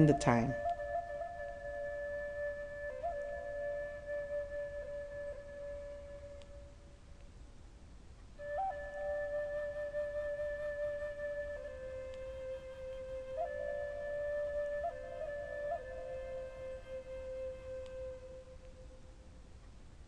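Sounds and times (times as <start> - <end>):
slow flute music: 0.0 - 7.3, 8.4 - 19.5.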